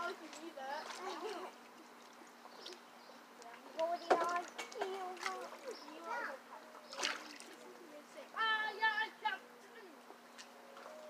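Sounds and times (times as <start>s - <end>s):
water splashing: 0.0s - 9.2s
children calling out: 4.6s - 7.2s.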